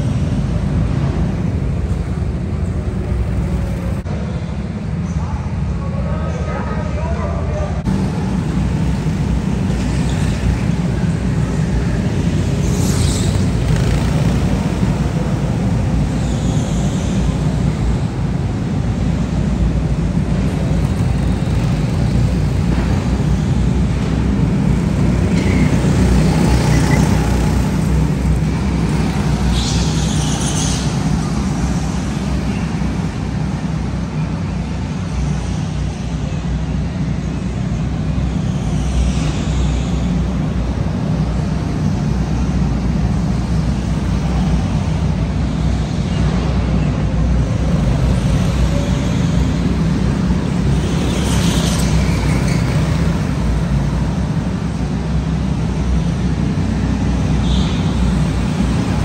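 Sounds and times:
go-kart motor and tyre drone: 8.0s - 19.1s, 19.8s - 37.1s, 37.7s - 59.0s.

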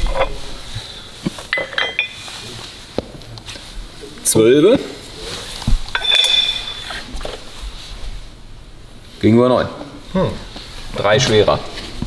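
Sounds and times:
metal parts clinking on steel: 1.5s - 2.3s, 5.9s - 7.1s
high metallic ringing: 1.5s - 2.5s, 5.9s - 7.2s.

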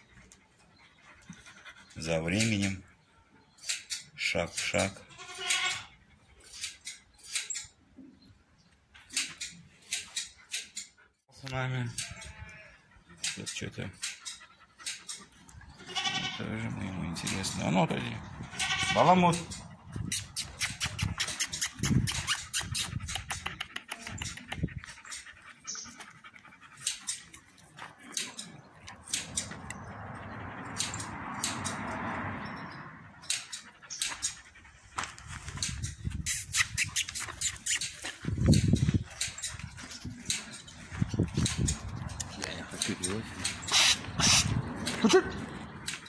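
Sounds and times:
puppy vocalisations: 19.2s - 27.4s, 36.1s - 45.9s
sharp clicks and scuffles: 33.2s - 45.0s.

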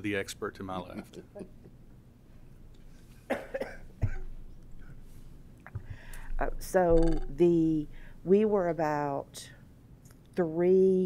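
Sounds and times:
person coughing: 3.3s - 4.3s.

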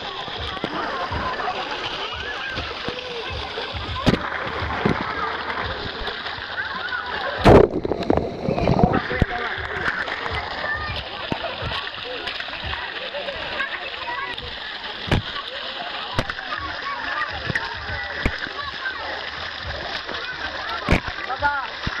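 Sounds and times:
children's voices and shouts: 0.0s - 7.6s, 8.3s - 22.0s
pool water splashing and lapping: 0.0s - 22.0s
sharp splashes: 0.0s - 22.0s.

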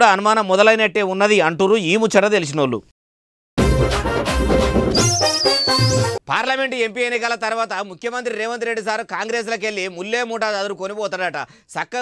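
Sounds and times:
musical sting with bass hit: 3.6s - 6.2s
high wavering whistle tone: 4.9s - 6.2s.

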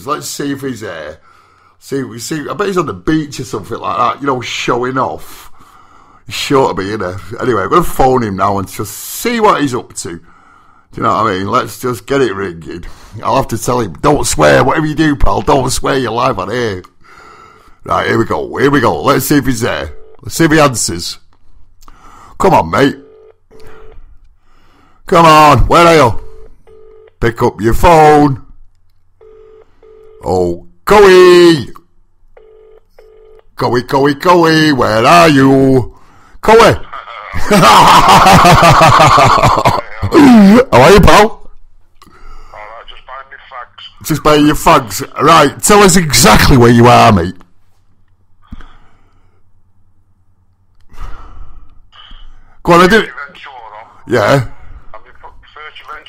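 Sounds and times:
noisy phone line: 14.2s - 21.2s, 22.4s - 24.2s, 25.1s - 28.3s, 29.2s - 31.6s, 32.4s - 35.8s, 36.4s - 41.2s, 42.2s - 47.3s, 52.0s - 56.0s
telephone ringing tone: 19.9s - 20.2s, 22.8s - 24.1s, 26.1s - 27.2s, 29.2s - 30.4s, 32.4s - 33.5s
man speaking loudly: 25.1s - 26.2s, 27.2s - 28.4s, 33.6s - 37.6s, 39.7s - 41.4s, 42.6s - 47.4s, 52.6s - 56.0s.

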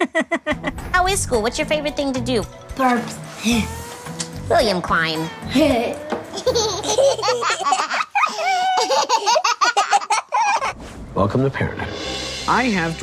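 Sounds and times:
young boy giggling: 5.5s - 10.8s.

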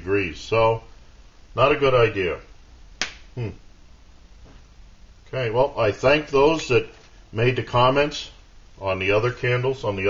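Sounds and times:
man murmuring hmm: 3.4s - 3.7s.

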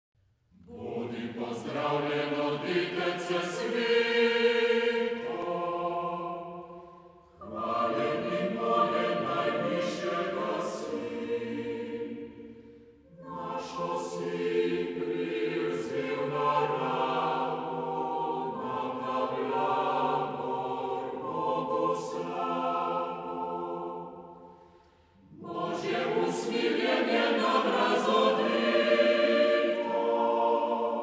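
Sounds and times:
choir singing a hymn: 0.6s - 31.0s.

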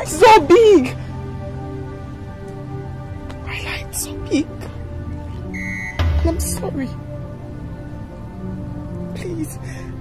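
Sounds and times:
soft film score music: 0.0s - 10.0s.

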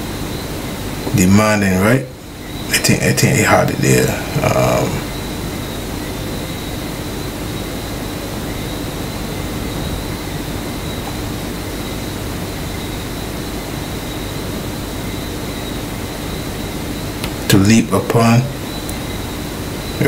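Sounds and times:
faint hum and whine: 0.0s - 20.0s.

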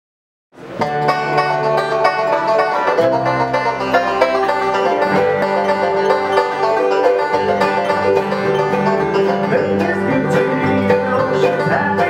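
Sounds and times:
acoustic guitar: 0.6s - 12.0s
banjo: 0.6s - 12.0s
mandolin: 0.6s - 12.0s
upright bass: 0.6s - 12.0s.

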